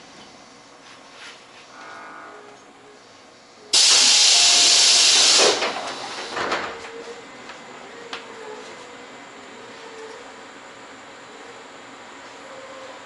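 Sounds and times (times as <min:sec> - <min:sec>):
compressed air hissing from train: 0:03.7 - 0:06.5.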